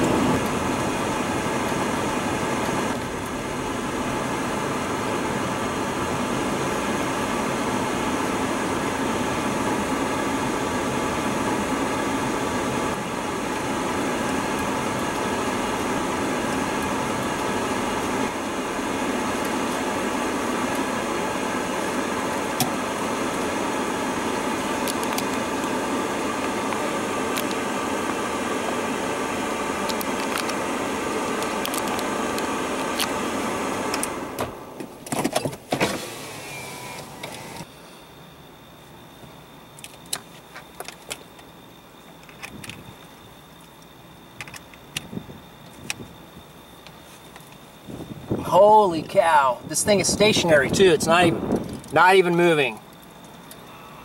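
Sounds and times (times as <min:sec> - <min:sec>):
car cabin noise: 0:00.0 - 0:37.8, 0:39.2 - 0:54.0.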